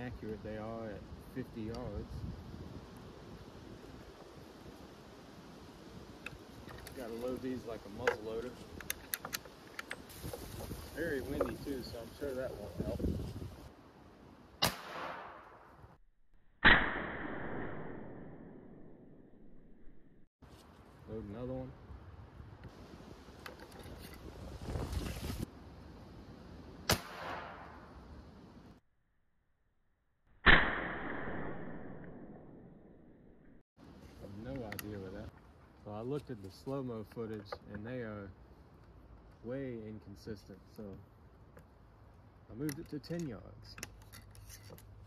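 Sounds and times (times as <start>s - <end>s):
wind rumble on microphone: 0.0s - 4.9s, 10.1s - 13.7s, 21.6s - 25.6s
air rifle shot crack: 14.6s - 15.6s, 16.6s - 18.3s, 26.9s - 27.8s, 30.4s - 32.3s.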